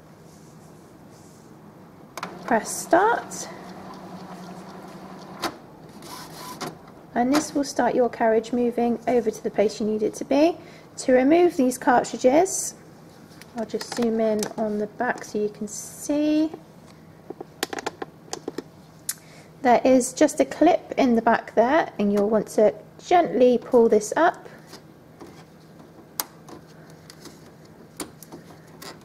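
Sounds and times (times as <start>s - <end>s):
printer motor hum: 2.2s - 6.9s
printer whir: 2.2s - 6.9s.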